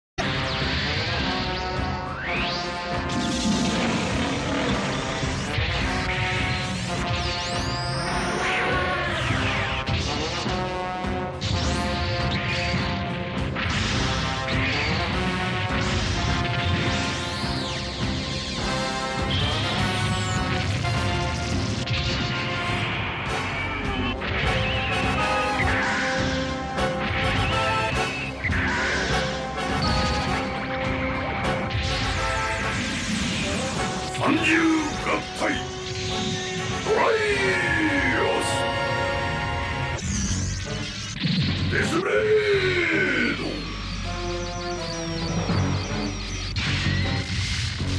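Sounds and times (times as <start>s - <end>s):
anime soundtrack music: 0.2s - 47.9s.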